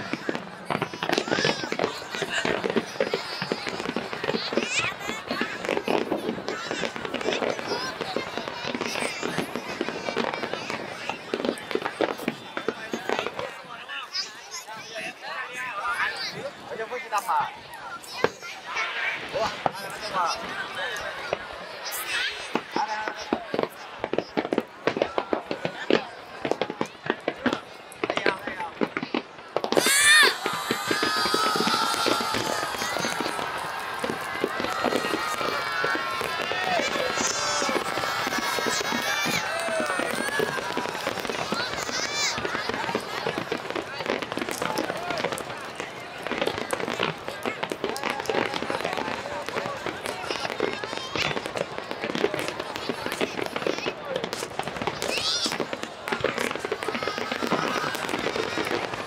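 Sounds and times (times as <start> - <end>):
fireworks bursting and crackling: 0.0 - 59.0
people calling out: 29.6 - 59.0.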